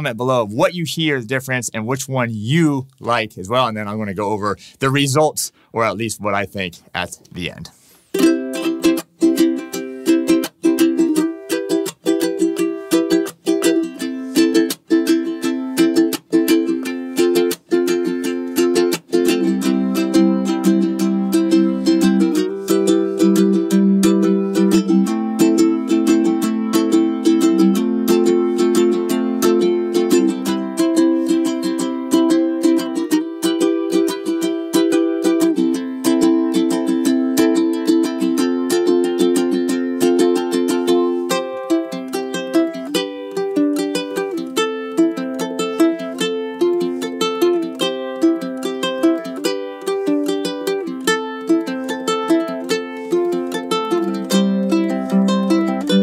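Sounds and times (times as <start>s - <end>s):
ukulele strumming chords: 5.9s - 56.0s.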